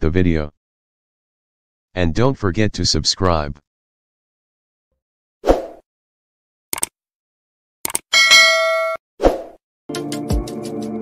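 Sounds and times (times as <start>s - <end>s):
bright bell ding: 8.2s - 9.0s.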